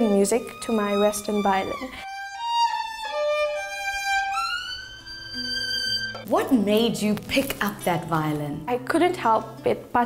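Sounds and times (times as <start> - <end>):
solo violin melody: 0.0 - 6.3.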